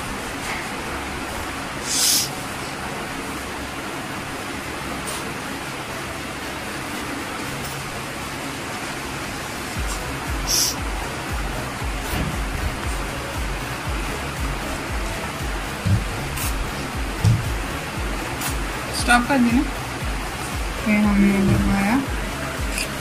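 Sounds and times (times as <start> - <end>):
steady hiss: 0.0 - 23.0
background music with beat: 9.6 - 23.0.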